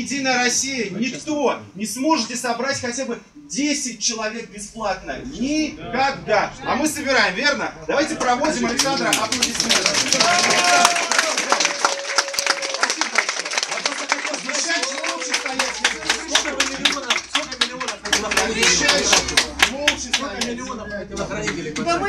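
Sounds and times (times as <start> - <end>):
crowd clapping: 8.1 - 20.7.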